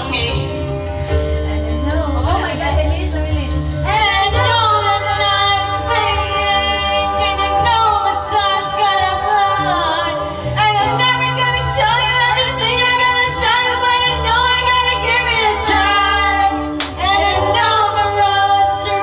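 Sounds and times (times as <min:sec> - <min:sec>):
voices singing in harmony: 0:01.5 - 0:19.0.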